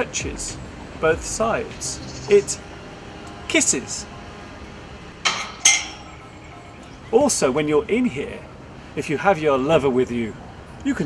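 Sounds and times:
metal gate clanking against frame: 0:05.2 - 0:07.0
metallic ring: 0:05.2 - 0:07.0.

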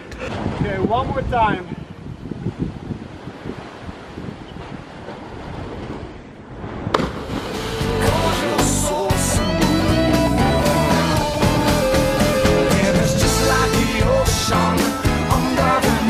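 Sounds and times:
wind noise on microphone: 0:00.0 - 0:08.3
surf: 0:00.0 - 0:16.0
splash into water: 0:06.8 - 0:08.0
rock music with electric guitar: 0:07.6 - 0:16.0.

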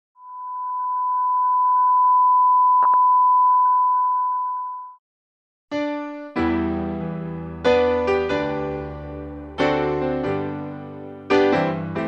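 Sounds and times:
steady electronic pure tone: 0:00.2 - 0:05.0.

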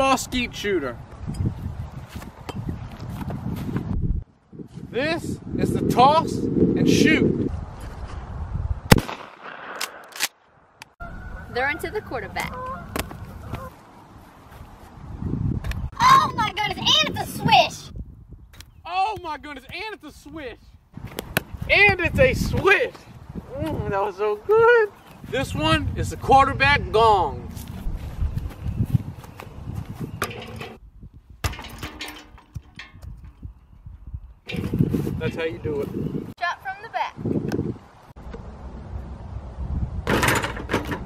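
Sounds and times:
wind buffeting microphone: 0:00.0 - 0:09.1, 0:11.0 - 0:19.7, 0:20.6 - 0:41.0
shotgun blast echo: 0:08.9 - 0:10.4.

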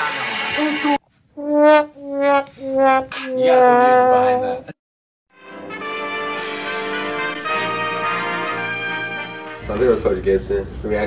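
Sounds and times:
brass fanfare notes: 0:01.4 - 0:04.4, 0:05.3 - 0:09.8.

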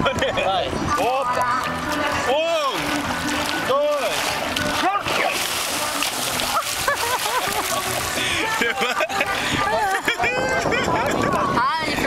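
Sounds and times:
water splashing: 0:00.0 - 0:12.0.

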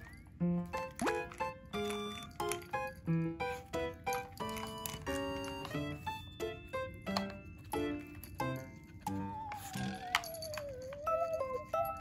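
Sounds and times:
bouncy comic music: 0:00.0 - 0:12.0.

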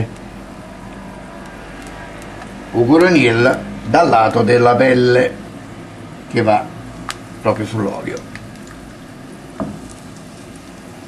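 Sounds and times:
oil crackling: 0:00.0 - 0:05.1, 0:06.8 - 0:11.0
fish sizzling in frying pan: 0:08.0 - 0:11.0.

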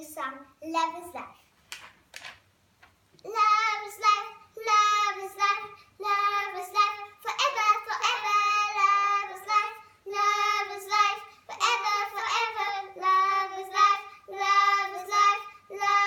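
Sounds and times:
girls singing unaccompanied: 0:03.2 - 0:16.0.

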